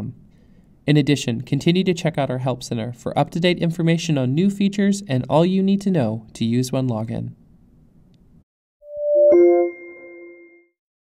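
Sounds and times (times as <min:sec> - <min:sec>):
logo chime: 0:08.9 - 0:10.8.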